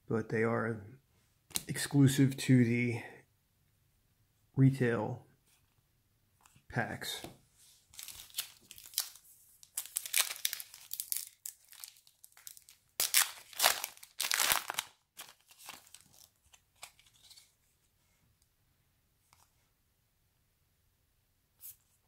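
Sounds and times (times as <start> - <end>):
card pack wrapper crinkling: 7.9 - 17.5.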